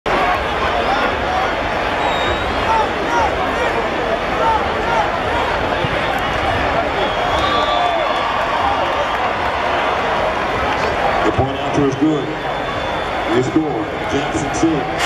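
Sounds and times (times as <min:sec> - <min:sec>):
stadium crowd shouting and chattering: 0:00.0 - 0:15.0.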